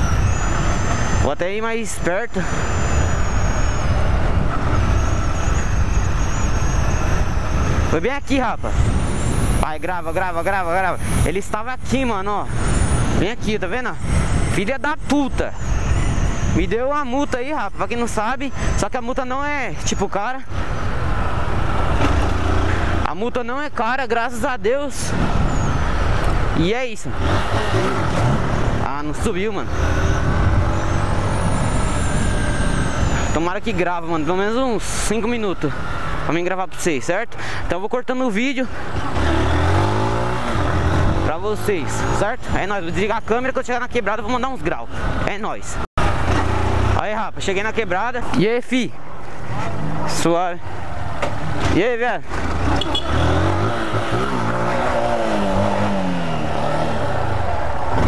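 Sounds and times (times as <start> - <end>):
wind rushing over microphone: 25.0 - 33.7
motorcycle engine running: 51.3 - 58.0.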